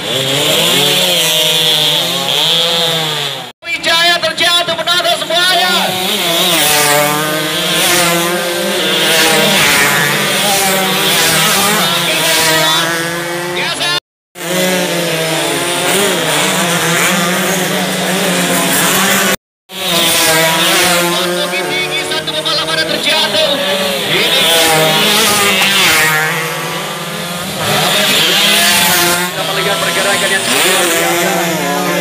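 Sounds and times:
race motorcycles buzzing past: 0:00.0 - 0:03.6, 0:05.5 - 0:32.0.

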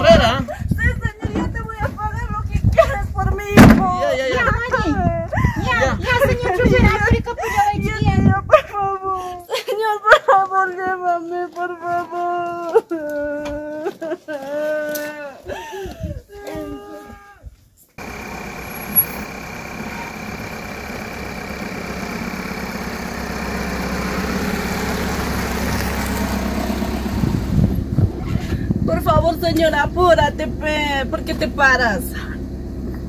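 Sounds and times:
vehicle bump: 0:01.0 - 0:04.0
woman wailing: 0:12.4 - 0:17.4
van driving on dirt track: 0:18.0 - 0:33.0.

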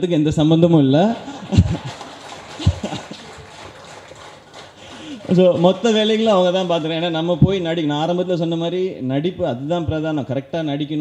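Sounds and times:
soft laughter: 0:01.2 - 0:05.6.

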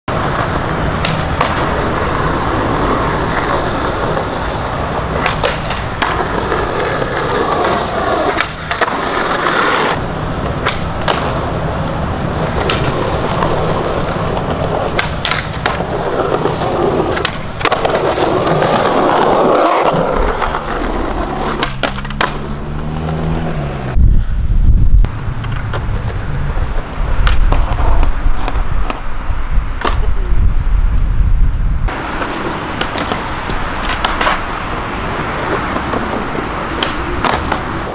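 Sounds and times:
skateboard clacks: 0:00.1 - 0:23.2, 0:25.0 - 0:29.1, 0:29.8 - 0:30.3, 0:31.9 - 0:37.9
skateboard scraping along ledge: 0:00.1 - 0:24.0, 0:25.1 - 0:29.1, 0:31.9 - 0:37.9
skateboard wheels rolling on stone: 0:00.1 - 0:24.0, 0:24.9 - 0:30.6, 0:31.9 - 0:37.9.

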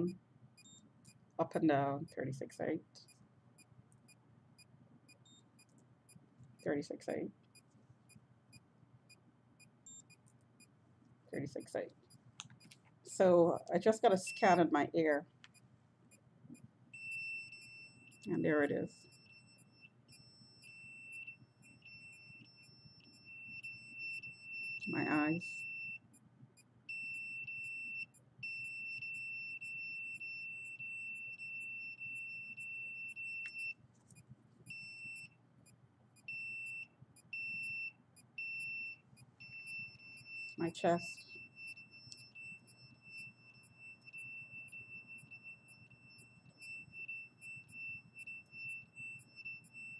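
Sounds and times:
meter alarm beeping: 0:08.1 - 0:10.7, 0:13.5 - 0:15.2, 0:16.5 - 0:33.8, 0:34.7 - 0:35.4, 0:36.2 - 0:49.9.

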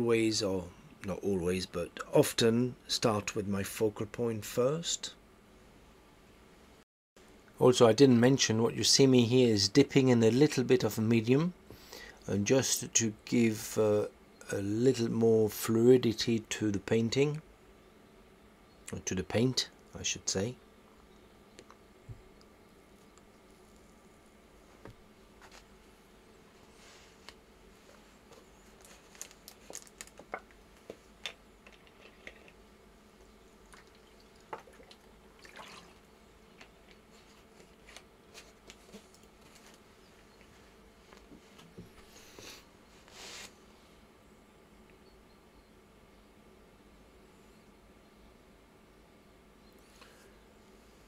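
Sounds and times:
faint room hum: 0:00.0 - 0:51.0
paintbrush scraping: 0:31.7 - 0:32.6, 0:42.1 - 0:43.6.

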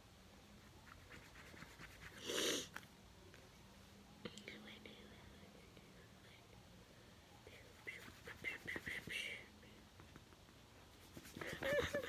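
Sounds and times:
person whispering: 0:04.3 - 0:06.5.

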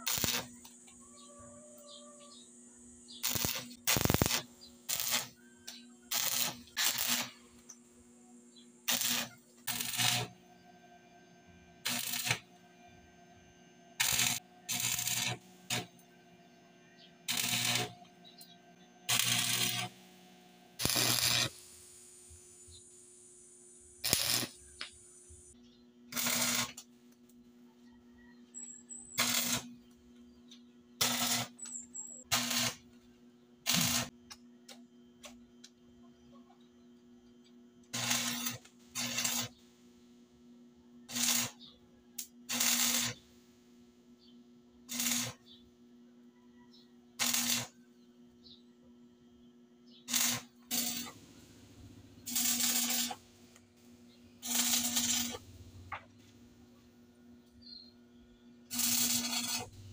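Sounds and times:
arc welding crackle: 0:00.0 - 0:00.8, 0:03.1 - 0:07.8, 0:08.8 - 0:10.4, 0:11.8 - 0:12.5, 0:14.0 - 0:16.0, 0:17.2 - 0:26.9, 0:29.1 - 0:29.8, 0:31.0 - 0:32.9, 0:33.6 - 0:34.2, 0:37.9 - 0:39.6, 0:41.1 - 0:41.6, 0:42.2 - 0:43.2, 0:44.9 - 0:45.5, 0:47.2 - 0:47.8, 0:50.1 - 0:56.4, 0:58.7 - 0:59.9.

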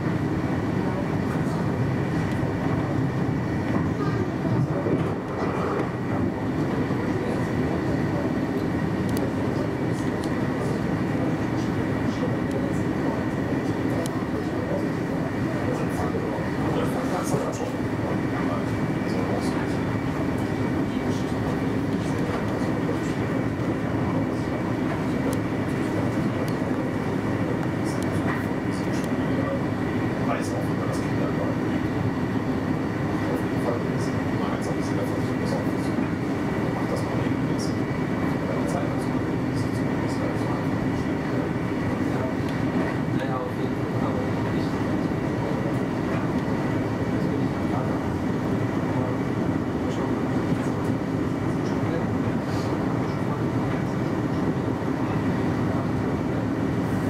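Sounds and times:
steady whine: 0:00.0 - 0:57.0
train running at speed: 0:00.0 - 0:57.0.

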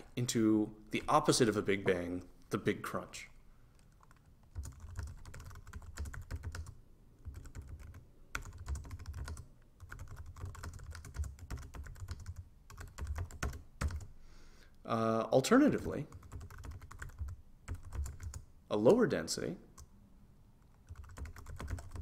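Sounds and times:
computer keyboard typing: 0:03.8 - 0:14.1, 0:16.1 - 0:18.5, 0:20.6 - 0:22.0.

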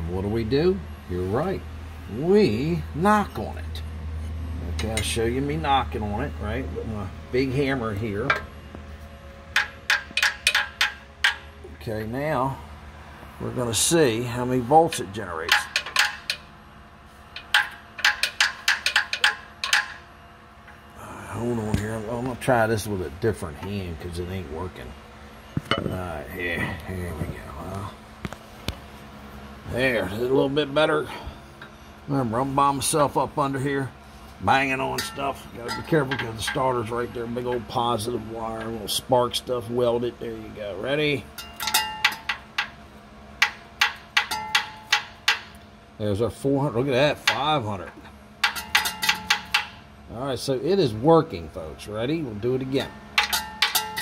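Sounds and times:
hammer tapping on metal: 0:09.6 - 0:11.5, 0:17.4 - 0:20.0, 0:43.4 - 0:45.6, 0:48.4 - 0:49.8, 0:52.8 - 0:54.0.

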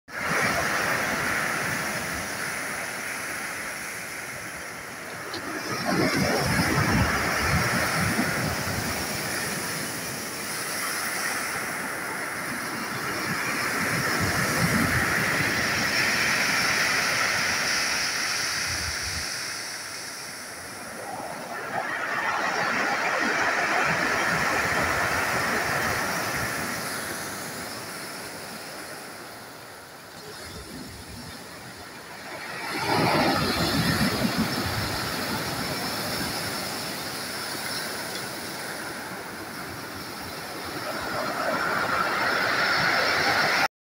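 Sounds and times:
surf on pebble beach: 0:00.1 - 0:43.7.

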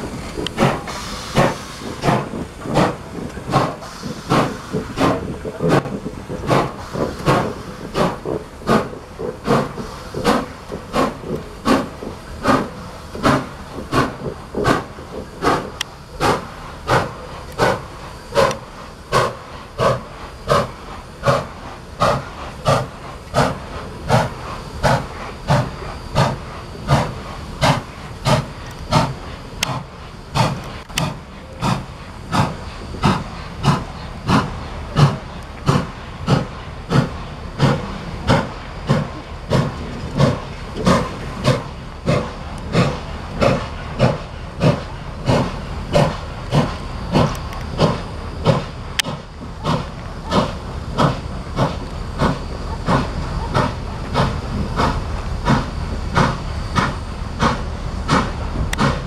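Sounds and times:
steam hissing from cylinders: 0:00.0 - 0:59.0
steam locomotive exhaust chuffing: 0:00.0 - 0:59.0.

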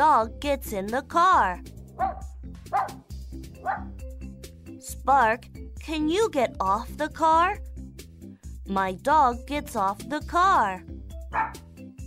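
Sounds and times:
dog barking: 0:02.0 - 0:03.0, 0:03.6 - 0:04.0, 0:11.3 - 0:11.7.

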